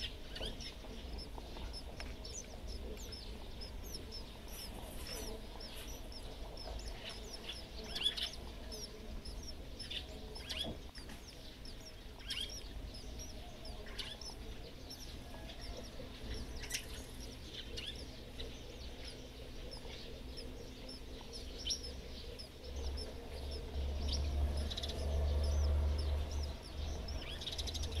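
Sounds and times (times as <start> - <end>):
sparrows chirping: 0.0 - 28.0.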